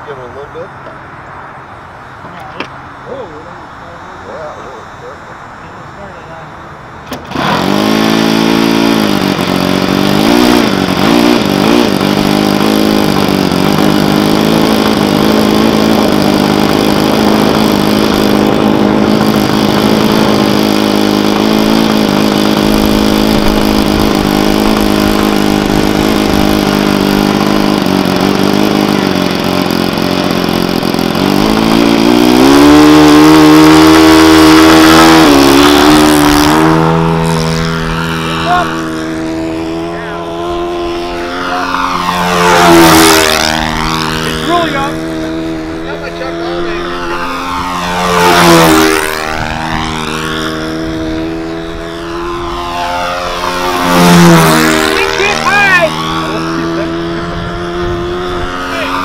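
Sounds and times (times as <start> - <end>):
model plane engine running: 4.4 - 59.0.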